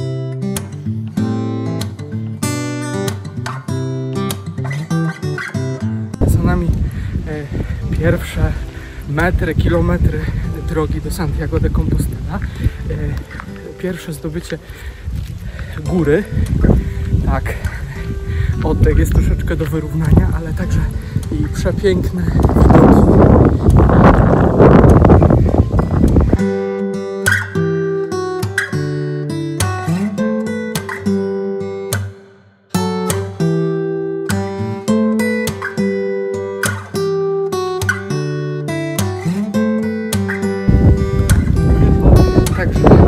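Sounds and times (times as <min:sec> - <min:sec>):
acoustic guitar music: 0:00.0 - 0:43.0
wind buffeting microphone: 0:06.2 - 0:26.5, 0:40.4 - 0:43.0.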